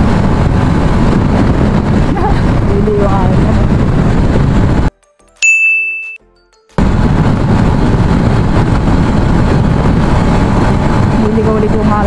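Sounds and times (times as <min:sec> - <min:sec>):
wind rushing over microphone: 0:00.0 - 0:04.9, 0:06.8 - 0:12.0
high electronic ding: 0:05.4 - 0:06.2.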